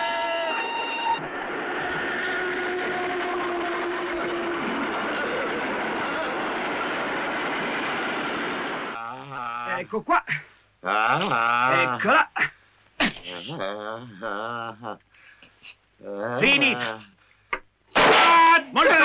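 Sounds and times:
train passing over rails: 0.2s - 9.0s
train horn: 2.1s - 4.7s.

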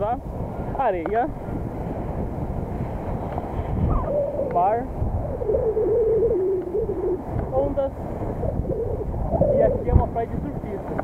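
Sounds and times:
surf: 0.0s - 11.0s
wind buffeting microphone: 0.0s - 11.0s
wavering hum-like tone: 3.8s - 7.3s, 8.4s - 9.9s.

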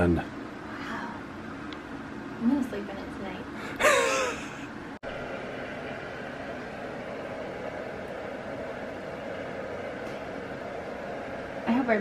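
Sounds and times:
steady hiss with low rumble: 0.0s - 12.0s
woman laughing: 3.6s - 4.7s.

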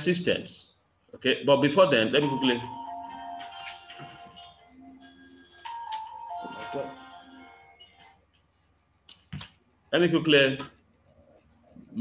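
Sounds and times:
simple electronic tune: 2.0s - 8.1s.

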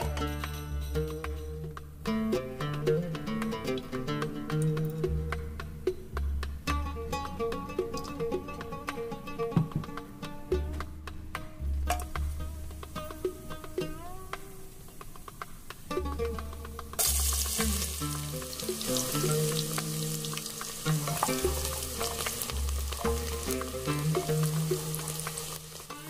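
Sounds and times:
background music with bass: 0.0s - 26.0s
onion frying in oil: 14.7s - 26.0s
oil sizzling in a pot: 17.0s - 26.0s.

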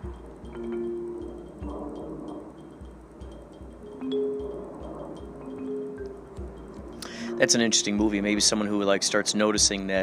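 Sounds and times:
sustained bell-like tones: 0.0s - 9.0s
low pulsing beat: 0.0s - 10.0s.

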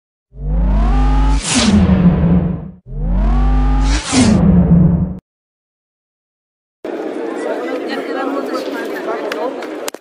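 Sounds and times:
people talking over one another: 6.9s - 9.9s.

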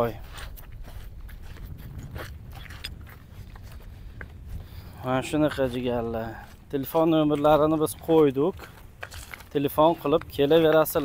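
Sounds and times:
footsteps crunching on pebbles: 0.0s - 11.0s.

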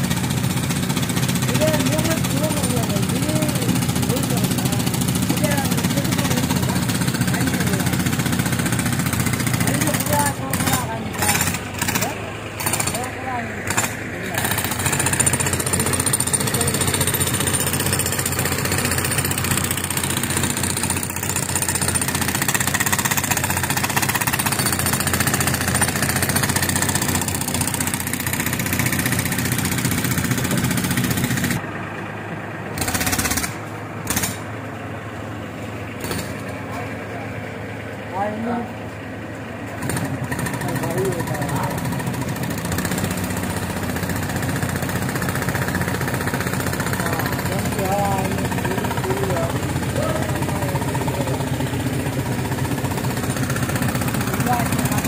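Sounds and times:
pneumatic breaker hammering rock: 0.0s - 31.6s, 32.8s - 34.5s, 36.0s - 36.6s, 39.8s - 55.0s.

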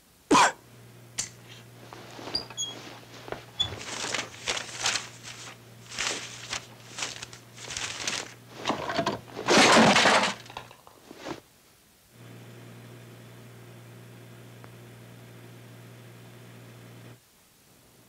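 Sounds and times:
objects crashing and breaking: 7.8s - 10.8s.

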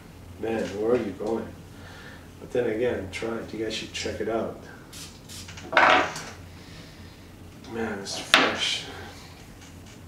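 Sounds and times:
cologne atomiser spray hiss: 4.9s - 5.6s.

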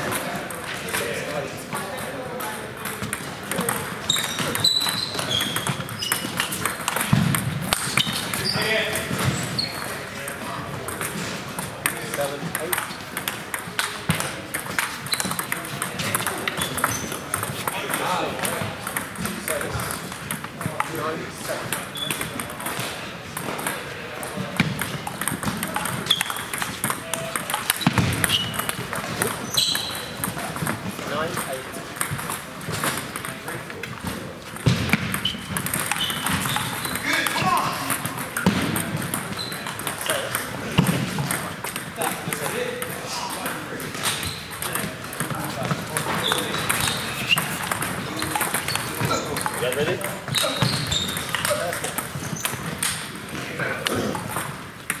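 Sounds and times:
ping pong ball clicking: 2.0s - 9.0s, 10.3s - 21.0s, 21.7s - 23.9s, 24.6s - 33.8s, 34.6s - 37.0s, 37.9s - 53.0s.

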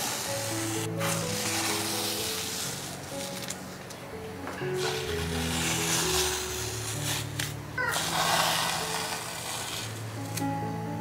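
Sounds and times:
background music with held low notes: 0.0s - 11.0s.

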